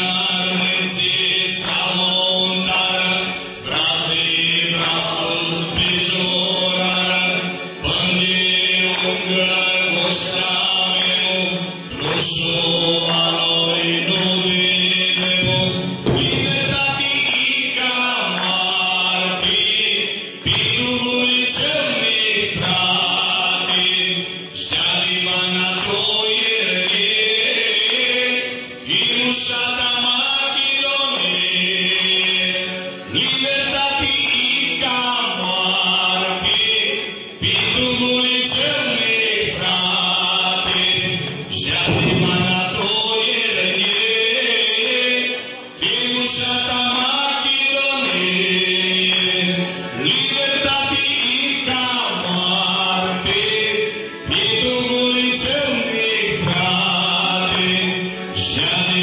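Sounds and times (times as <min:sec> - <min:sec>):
folk song singing: 0:00.0 - 0:59.0
instrumental accompaniment: 0:00.0 - 0:59.0.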